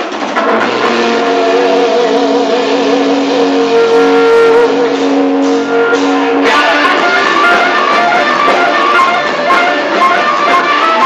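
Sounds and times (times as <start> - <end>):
distorted electric guitar sustained notes: 0.0 - 11.0.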